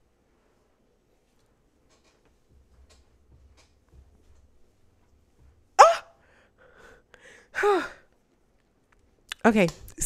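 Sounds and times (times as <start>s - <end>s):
woman breathing: 5.8s - 8.2s.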